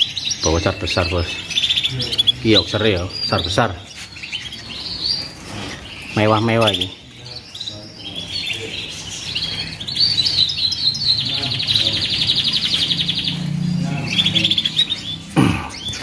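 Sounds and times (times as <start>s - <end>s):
canaries singing: 0.0s - 16.0s
fast rolling bird trill: 0.0s - 16.0s.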